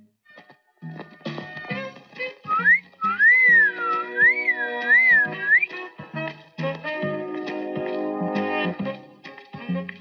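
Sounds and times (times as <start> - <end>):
background film music: 0.2 - 10.0
person whistling a wavering tune: 2.5 - 5.8.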